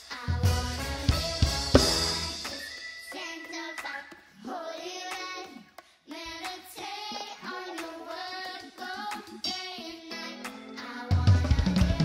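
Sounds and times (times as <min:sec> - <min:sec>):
sparse backing music: 0:00.4 - 0:02.8.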